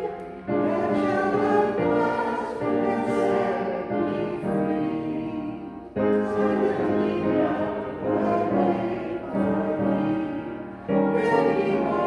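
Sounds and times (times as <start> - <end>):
choir singing: 0.0 - 12.0
woman singing a hymn: 0.0 - 12.0.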